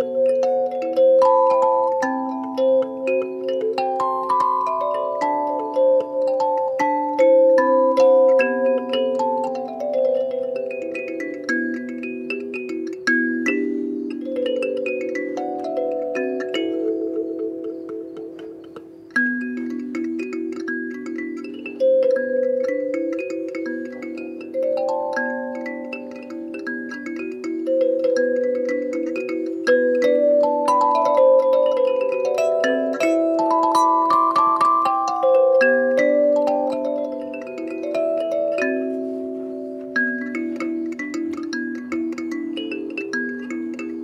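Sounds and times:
kalimba notes ringing: 0.0 - 44.0.

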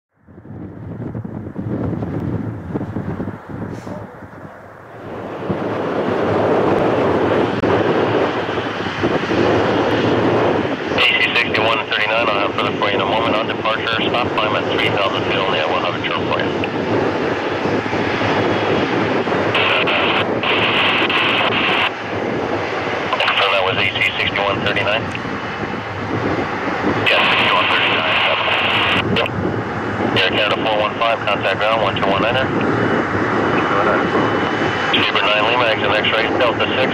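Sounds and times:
jet airliner engines: 0.1 - 36.9
radio speech: 10.9 - 16.8, 19.5 - 21.9, 23.0 - 25.2, 27.0 - 29.4, 30.1 - 32.7, 33.5 - 34.2, 34.8 - 36.9.

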